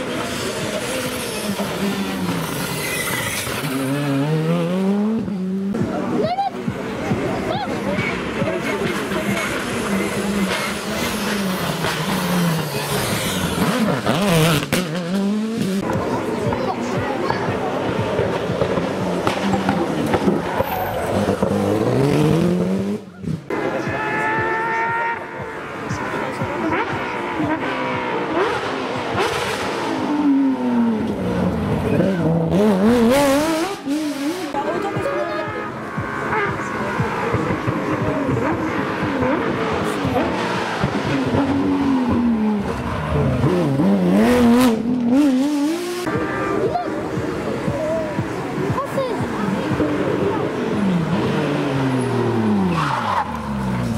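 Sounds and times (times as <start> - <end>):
rally car engines revving: 0.0 - 53.9.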